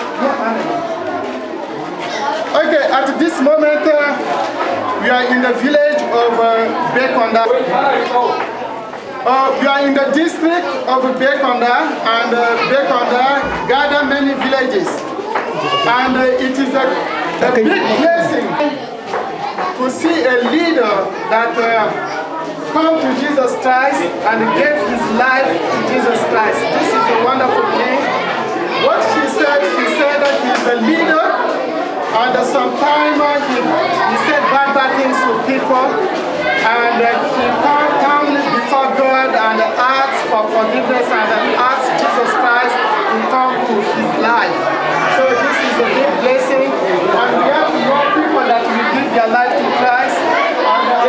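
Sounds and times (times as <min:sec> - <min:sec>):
people talking: 0:00.0 - 0:51.0
voices chattering: 0:00.0 - 0:51.0.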